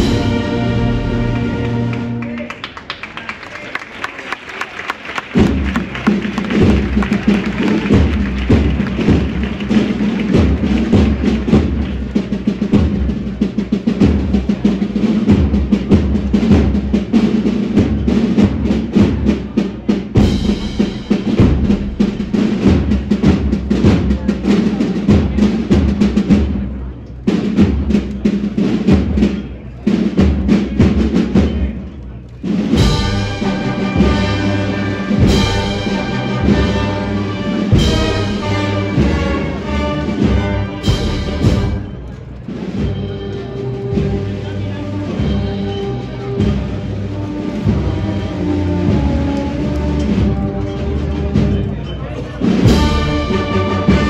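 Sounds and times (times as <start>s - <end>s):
brass band playing a march: 0.0s - 2.5s, 4.5s - 31.8s, 32.4s - 54.0s
drums playing: 0.0s - 2.8s, 4.7s - 54.0s.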